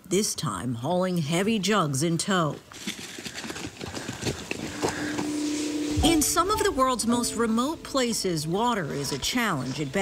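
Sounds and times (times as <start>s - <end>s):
low steady tone: 4.7s - 10.0s.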